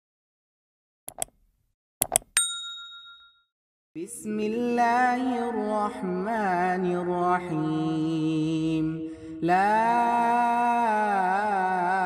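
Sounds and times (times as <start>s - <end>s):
bright bell ding: 2.3s - 3.5s.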